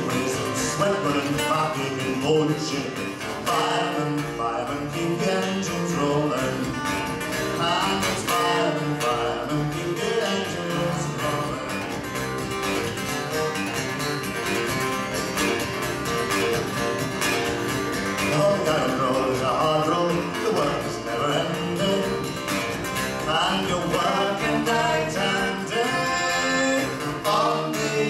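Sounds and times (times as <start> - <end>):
acoustic guitars strummed and picked: 0.0 - 28.0.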